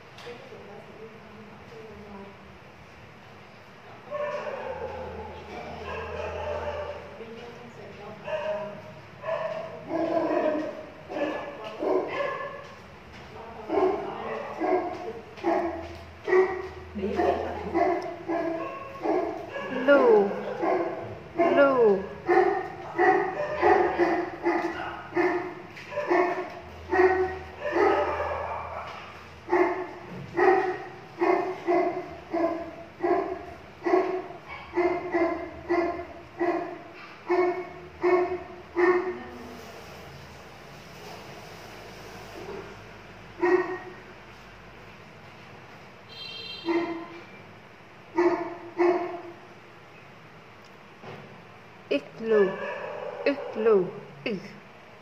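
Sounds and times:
dog barking: 0:04.1 - 0:07.2, 0:08.2 - 0:12.8, 0:13.7 - 0:39.2, 0:43.4 - 0:44.0, 0:46.1 - 0:47.3, 0:48.2 - 0:49.4, 0:52.3 - 0:54.0.

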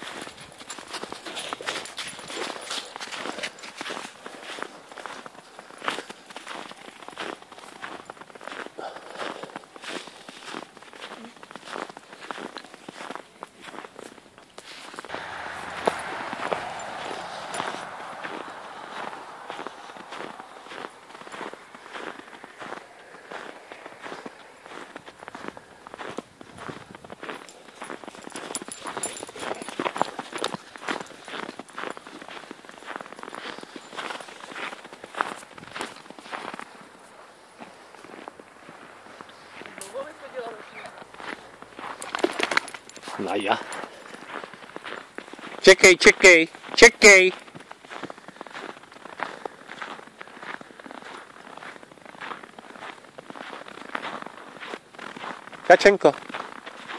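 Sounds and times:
footsteps crunching through snow: 0:00.0 - 0:56.9.

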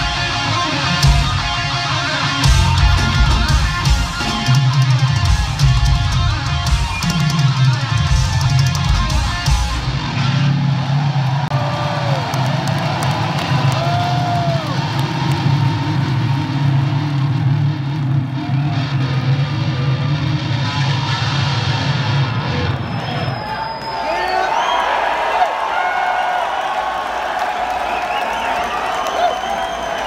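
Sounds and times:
heavy metal band playing: 0:00.0 - 0:11.6, 0:12.8 - 0:22.9
crowd cheering and whistling: 0:00.0 - 0:30.0.

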